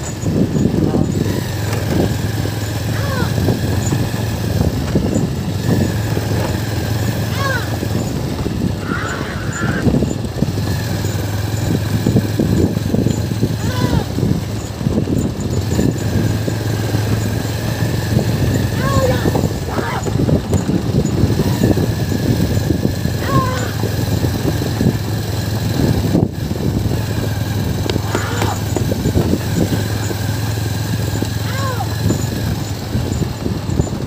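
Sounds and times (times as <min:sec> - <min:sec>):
rough rattle: 0:00.0 - 0:34.0
small vehicle engine running: 0:00.0 - 0:34.0
short rising calls: 0:01.5 - 0:04.6, 0:21.5 - 0:24.7.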